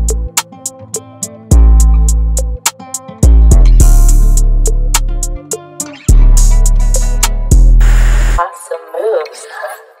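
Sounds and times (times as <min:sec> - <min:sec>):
heavy bass: 0:03.2 - 0:05.4, 0:06.1 - 0:08.4.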